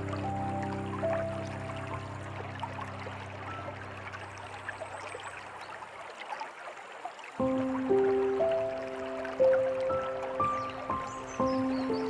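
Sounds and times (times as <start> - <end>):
soft slow piano music: 0.0 - 6.0, 7.3 - 12.0
stream trickling: 0.0 - 12.0.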